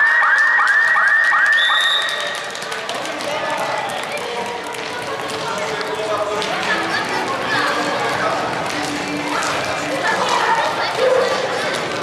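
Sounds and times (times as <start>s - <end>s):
siren-like electronic signal: 0.0s - 2.4s
hubbub of voices: 1.7s - 12.0s.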